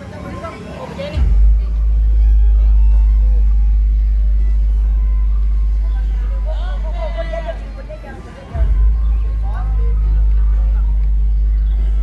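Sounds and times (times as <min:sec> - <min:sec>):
voices and chatter: 0:00.0 - 0:12.0.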